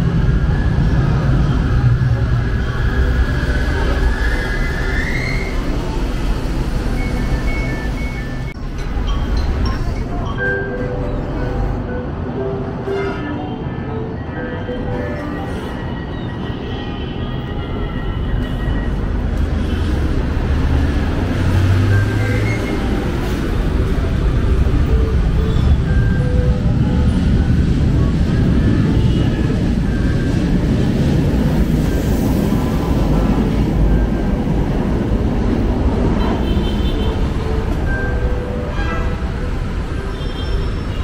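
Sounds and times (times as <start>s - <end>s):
light-rail train rumbling past: 0.0s - 41.0s.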